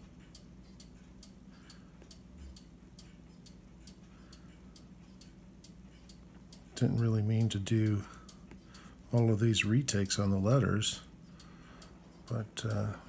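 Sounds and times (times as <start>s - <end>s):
faint ticks: 0.0s - 9.3s
low steady hum: 0.0s - 13.0s.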